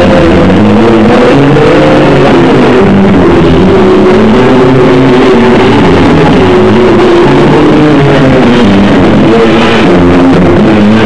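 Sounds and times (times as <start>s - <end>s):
bass guitar: 0.0s - 11.0s
distorted noise rock band: 0.0s - 11.0s.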